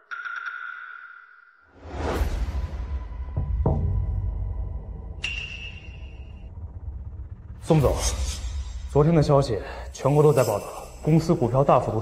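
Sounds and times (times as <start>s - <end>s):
background music: 1.8s - 12.0s
high ringing tone: 5.2s - 6.5s.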